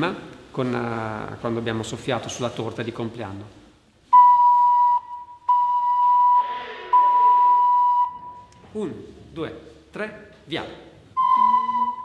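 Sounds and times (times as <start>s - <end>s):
ocarina high note: 4.2s - 8.5s, 11.2s - 12.0s.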